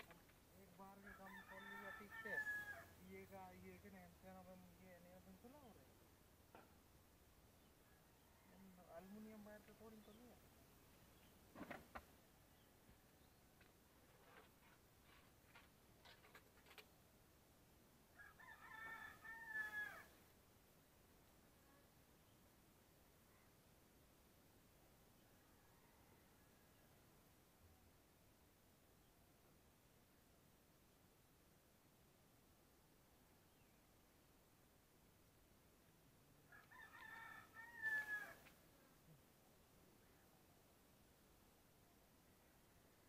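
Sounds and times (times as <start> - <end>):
faint rooster crowing: 0.8 - 3.2, 7.8 - 9.9, 18.1 - 20.3, 25.2 - 27.1, 36.4 - 38.6.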